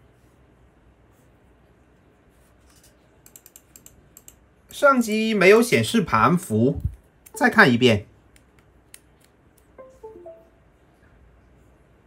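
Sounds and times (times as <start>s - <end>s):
computer system chime: 9.8s - 10.6s.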